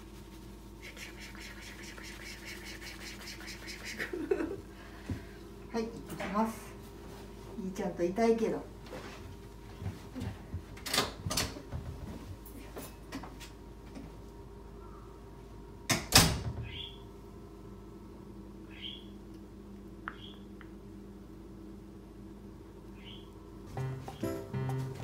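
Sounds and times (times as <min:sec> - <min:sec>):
steady low hum: 0:00.0 - 0:15.9, 0:17.0 - 0:25.0.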